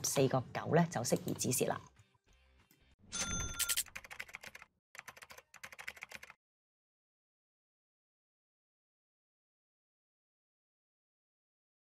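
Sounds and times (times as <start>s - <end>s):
short bright ding: 3.1s - 3.8s
keyboard-like typing clicks: 3.6s - 6.4s.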